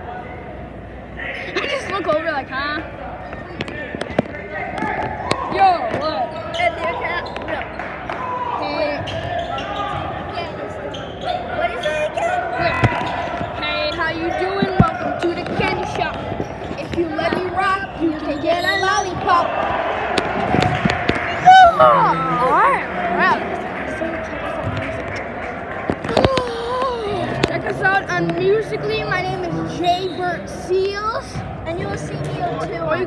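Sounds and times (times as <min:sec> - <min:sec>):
crowd voices and chatter: 0:00.0 - 0:33.0.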